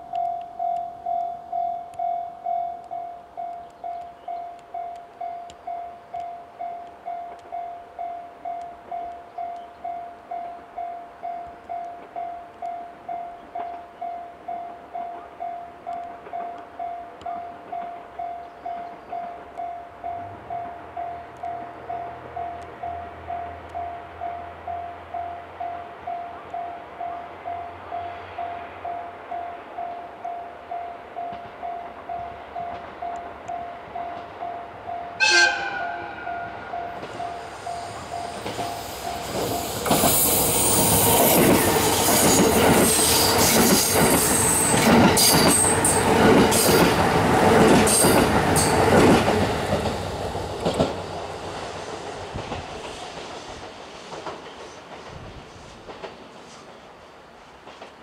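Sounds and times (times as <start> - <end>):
warning bell ringing: 0.0 - 39.7
train wheels on rails: 0.0 - 58.0
train horn blast: 35.1 - 38.5.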